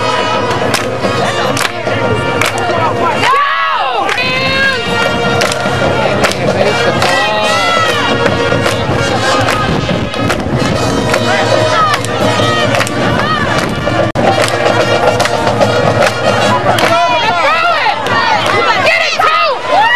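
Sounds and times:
crowd noise: 0.0s - 19.9s
drums striking a beat: 4.1s - 18.7s
held horn notes: 4.2s - 18.2s.

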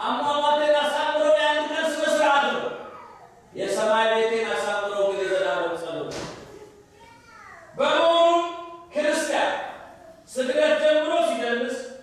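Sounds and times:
man preaching into a microphone: 0.0s - 2.9s, 3.5s - 6.3s, 7.7s - 12.0s.

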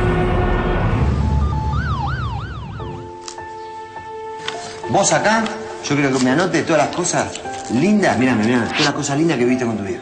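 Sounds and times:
emergency vehicle siren yelping: 1.2s - 3.2s.

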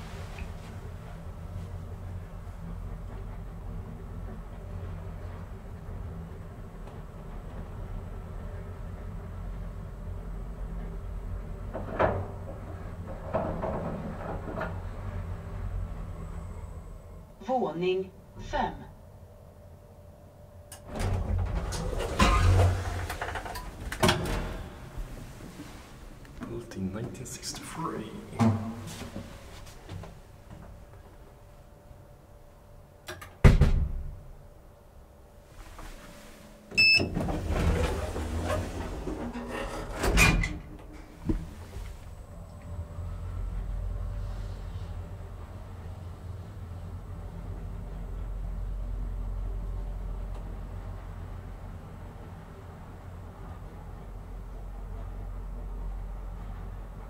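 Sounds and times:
elevator car humming: 0.0s - 33.4s, 34.2s - 57.0s
click: 20.7s - 20.9s
elevator door thump: 33.4s - 34.2s
elevator beep: 36.7s - 37.2s.

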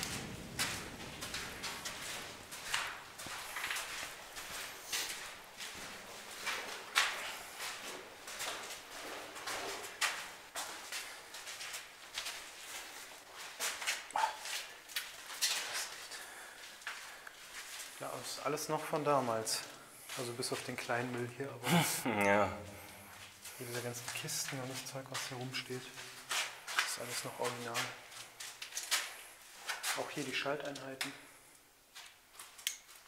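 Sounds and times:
footsteps on gritty concrete: 0.0s - 21.2s, 22.8s - 30.8s.

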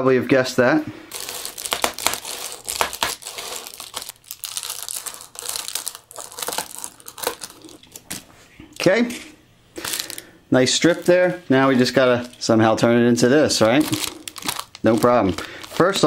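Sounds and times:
foil insulation crinkling: 1.1s - 8.2s, 9.8s - 16.0s
scissors cutting foil insulation: 1.2s - 7.8s.

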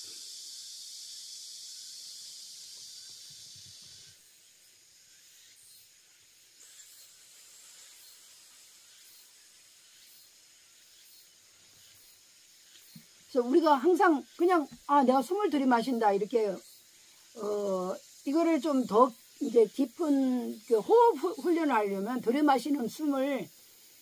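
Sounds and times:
insects chirping: 0.0s - 24.0s.

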